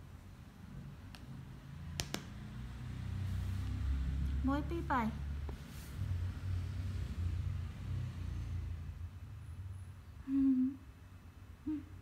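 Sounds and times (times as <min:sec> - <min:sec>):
person humming: 0:10.2 - 0:10.9, 0:11.6 - 0:12.0.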